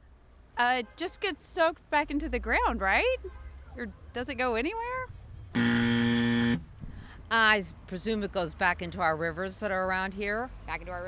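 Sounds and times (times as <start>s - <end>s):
wrong-answer buzzer: 5.6s - 6.6s.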